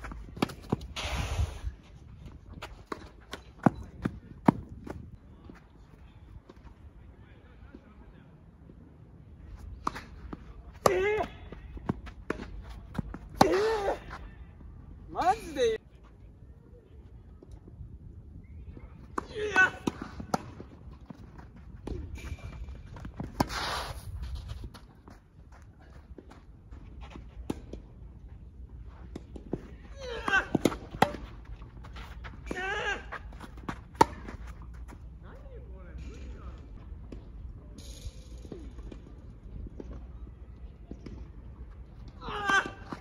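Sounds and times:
players shouting: 19.2 - 20.2.

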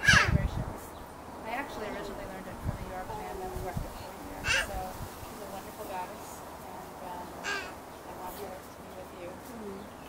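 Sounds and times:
crow cawing: 0.0 - 0.3, 4.4 - 4.8, 7.4 - 7.8
faint background voices: 0.0 - 10.0.

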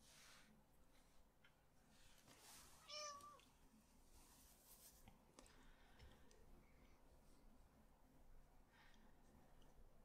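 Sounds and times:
paintbrush strokes on paper: 4.0 - 5.1.

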